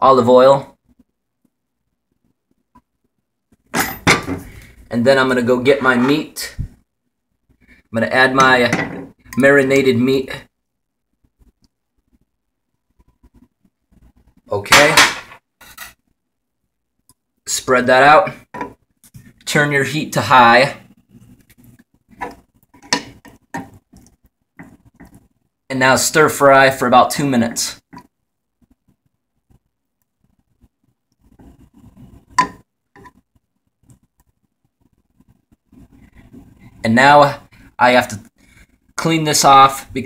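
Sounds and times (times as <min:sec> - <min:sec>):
person speaking: 0:04.1 - 0:06.8, 0:07.9 - 0:10.6, 0:14.4 - 0:15.3, 0:17.4 - 0:18.5, 0:19.3 - 0:23.2, 0:25.7 - 0:28.0, 0:36.6 - 0:38.3, 0:39.0 - 0:40.0
spatula scraping a frying pan: 0:15.6 - 0:16.0, 0:20.4 - 0:25.3, 0:31.2 - 0:33.2.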